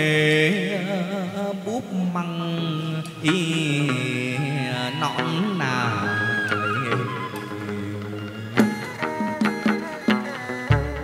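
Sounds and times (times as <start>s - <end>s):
man singing long melismatic notes: 0.0s - 11.0s
plucked lute: 5.1s - 11.0s.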